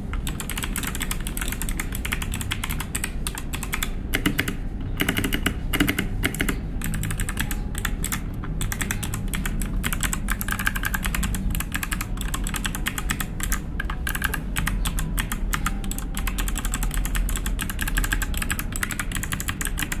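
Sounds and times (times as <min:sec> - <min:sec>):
mechanical keyboard typing: 0:00.1 - 0:20.0.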